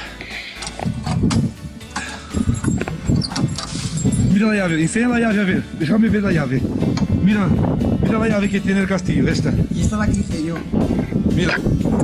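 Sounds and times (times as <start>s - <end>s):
key and iron door fittings clanking: 0.6s - 5.1s.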